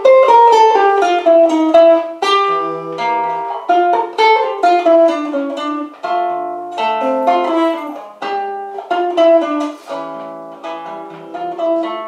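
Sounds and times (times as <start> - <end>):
plucked string melody: 0.0 - 12.0.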